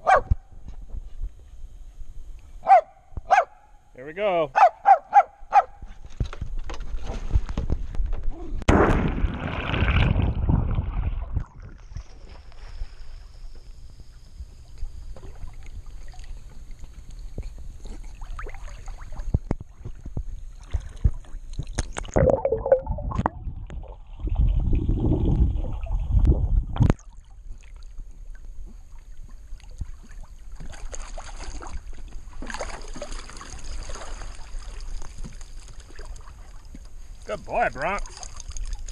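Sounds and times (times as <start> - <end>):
dog splashing in pool water: 15.3 - 19.8, 29.6 - 36.7, 38.0 - 38.9.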